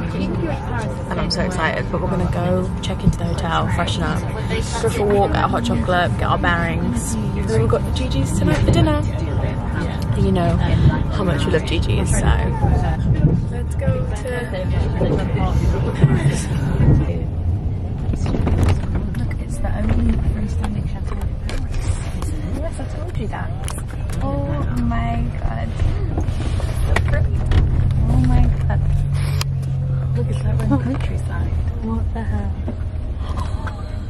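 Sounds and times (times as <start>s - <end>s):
woman talking: 0.0s - 26.2s, 27.0s - 29.0s, 30.1s - 32.7s
faint voices: 0.0s - 34.0s
train carriage rumbling: 0.0s - 34.0s.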